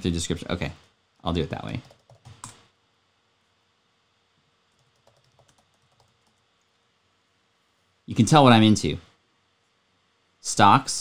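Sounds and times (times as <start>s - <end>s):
faint typing on a keyboard: 1.7s - 2.7s, 4.7s - 6.8s.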